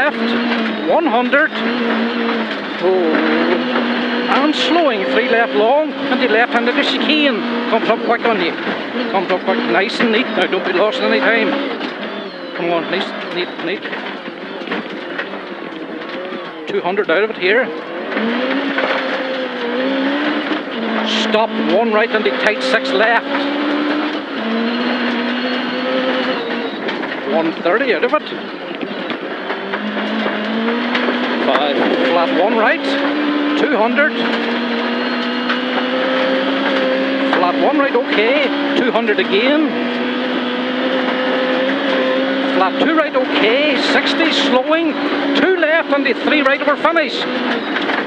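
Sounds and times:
car engine at high revs: 0.0 - 48.0
gravel road noise: 0.0 - 48.0.

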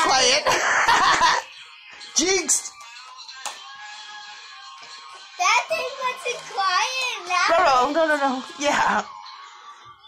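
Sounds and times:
quiet music with long notes: 0.0 - 10.0.

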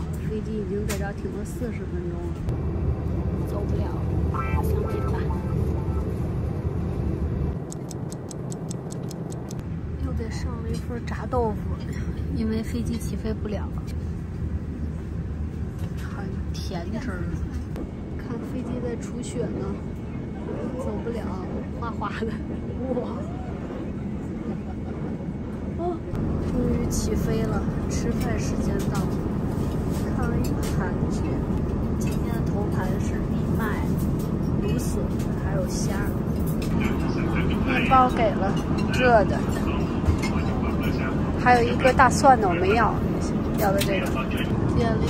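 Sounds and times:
airliner cabin rumble: 0.0 - 45.0
faint voices: 36.6 - 45.0.

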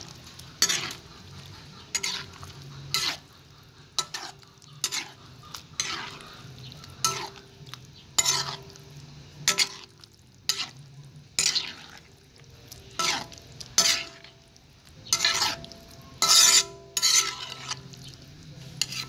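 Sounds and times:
wooden spoon stirring thick stew: 0.0 - 19.0.

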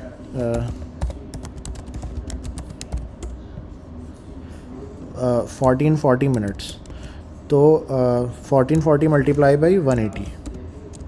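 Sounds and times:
typing on keyboard: 0.4 - 3.4, 5.6 - 7.0, 8.7 - 11.0.

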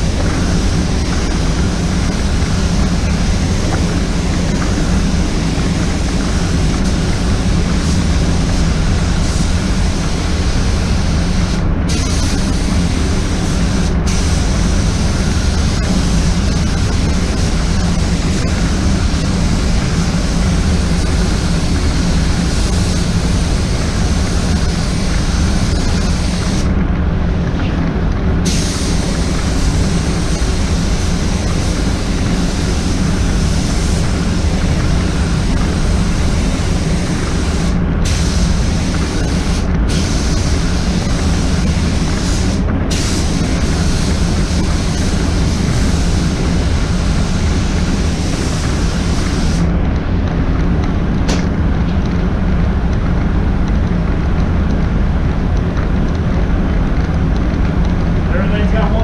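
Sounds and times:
spray gun hissing: 0.0 - 26.8, 28.4 - 49.8
booth airflow rumble: 0.0 - 59.0.

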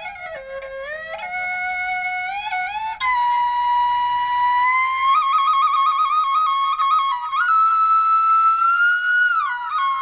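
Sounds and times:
flute holding long note: 0.0 - 10.0.

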